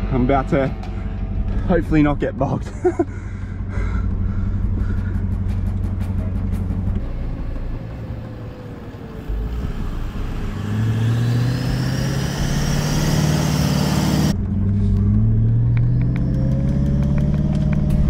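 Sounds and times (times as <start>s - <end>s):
diesel engine under load: 0.0s - 18.0s.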